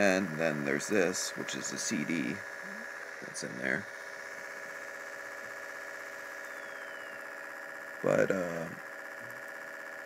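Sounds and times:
faint high whine: 0.0 - 10.0
laptop low hum with tones: 0.0 - 10.0.

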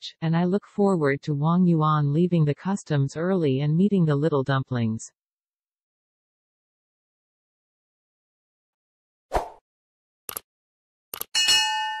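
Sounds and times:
bell-like notification chime: 11.4 - 12.0.

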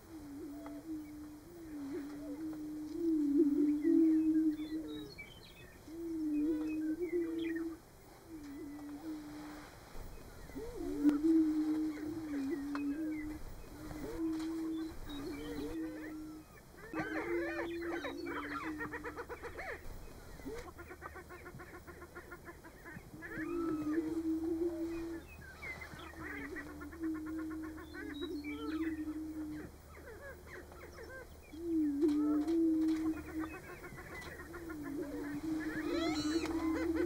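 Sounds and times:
prairie-chickens booming: 0.0 - 37.0
rapid cackling calls: 10.5 - 37.0.

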